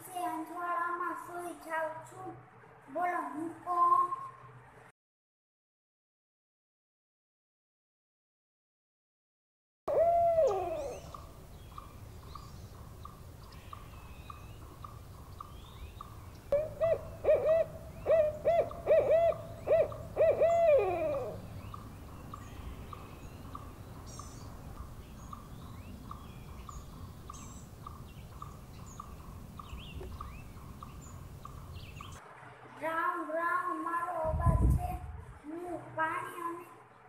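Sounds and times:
faint high pulsing call: 9.9 - 12.6, 16.5 - 24.5
owl hooting: 9.9 - 32.2
small bird chirps: 21.2 - 32.2.

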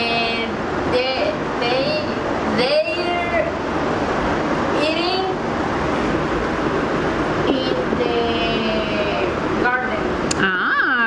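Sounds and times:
students' voices overlapping: 0.0 - 11.0.

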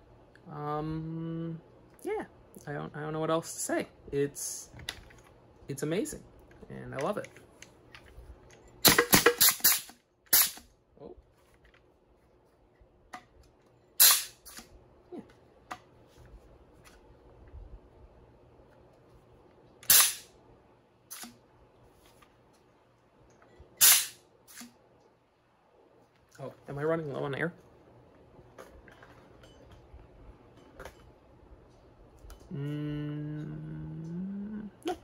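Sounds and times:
air blaster shots: 14.0 - 14.6, 19.8 - 20.3, 23.8 - 24.7.

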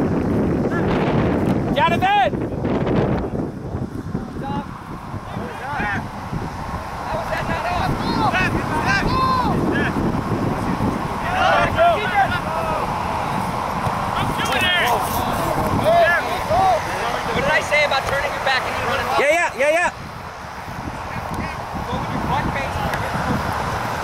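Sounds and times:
wind rumbling on microphone: 0.0 - 24.0
players shouting: 1.6 - 2.4, 4.2 - 24.0.

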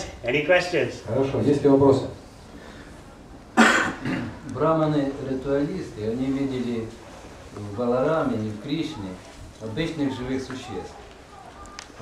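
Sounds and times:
person coughing: 3.6 - 4.4.

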